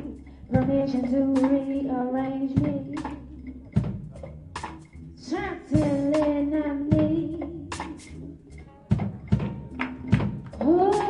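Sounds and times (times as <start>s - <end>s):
woman singing: 0.0s - 3.4s, 5.2s - 8.1s, 10.6s - 11.0s
orchestral accompaniment: 2.6s - 11.0s.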